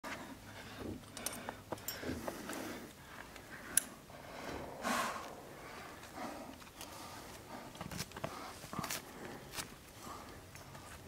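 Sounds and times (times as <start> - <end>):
climbing clicks and scuffs: 0.7 - 3.9, 6.0 - 11.0.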